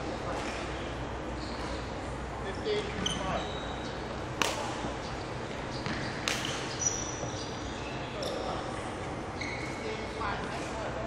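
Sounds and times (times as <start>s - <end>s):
low hall hum: 0.0s - 11.0s.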